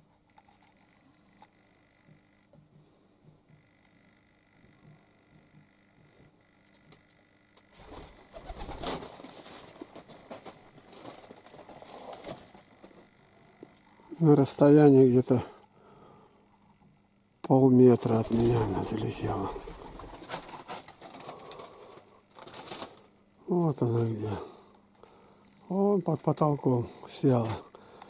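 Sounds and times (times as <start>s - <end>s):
pigeons cooing: 7.9s - 9.1s, 18.0s - 21.8s.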